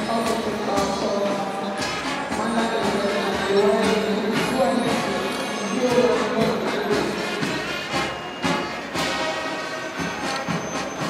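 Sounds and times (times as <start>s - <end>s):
brass band music: 0.0s - 11.0s
drum beats: 0.0s - 11.0s.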